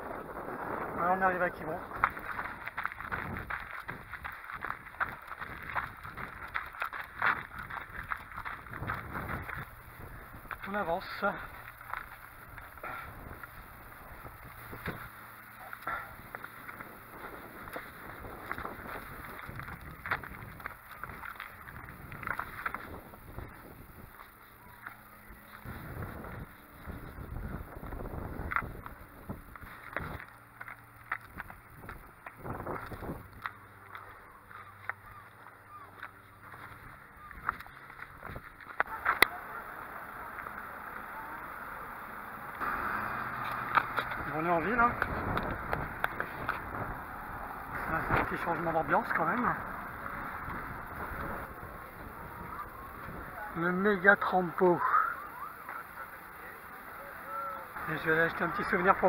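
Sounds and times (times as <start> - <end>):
wind on microphone: 0.0 - 10.6, 16.8 - 24.2, 25.6 - 30.2, 31.3 - 33.5, 44.9 - 48.4.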